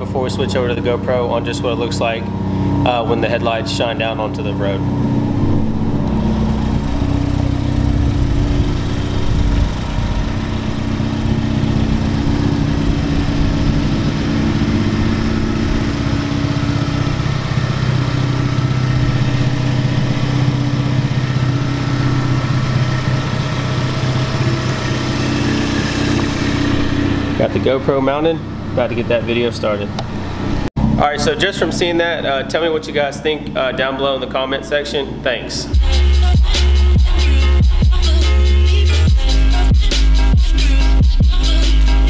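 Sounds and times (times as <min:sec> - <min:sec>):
car engine idling: 0:00.0 - 0:42.0.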